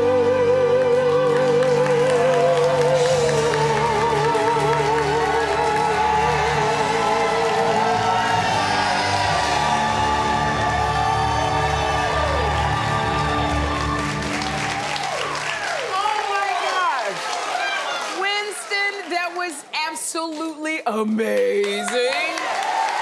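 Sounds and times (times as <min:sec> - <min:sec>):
song with backing music: 0:00.0 - 0:15.5
audience applauding and cheering: 0:00.0 - 0:23.0.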